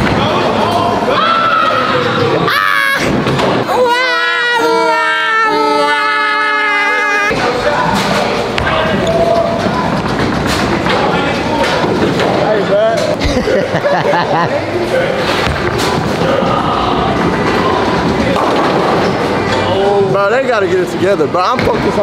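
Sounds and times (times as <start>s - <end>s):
bowling alley din: 14.6s - 19.8s.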